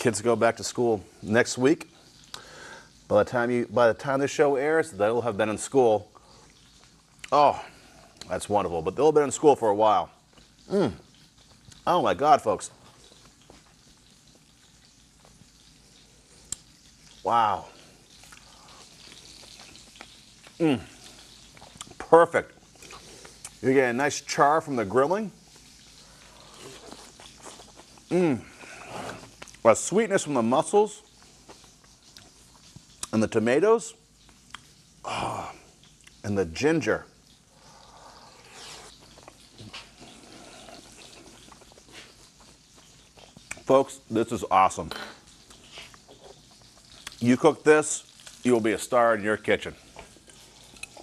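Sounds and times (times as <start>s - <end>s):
fish sizzling in a pan: 0.0s - 51.0s.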